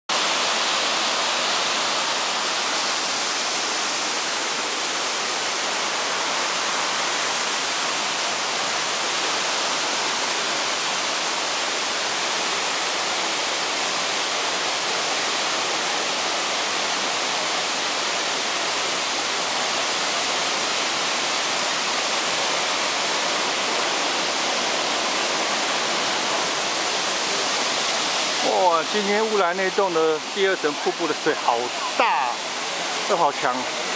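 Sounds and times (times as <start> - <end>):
waterfall rushing water: 0.1 - 33.9.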